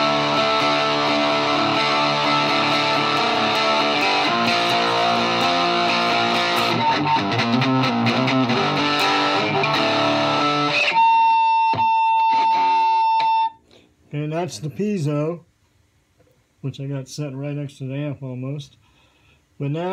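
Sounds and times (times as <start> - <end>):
steady high tone: 0.0 - 7.1
amplified guitar picked and strummed: 0.0 - 13.6.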